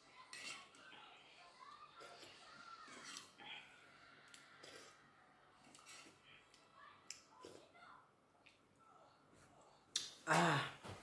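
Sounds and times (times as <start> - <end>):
spoon on bowl: 0.2 - 0.8, 2.9 - 3.4
slurping broth from spoon: 2.0 - 6.6.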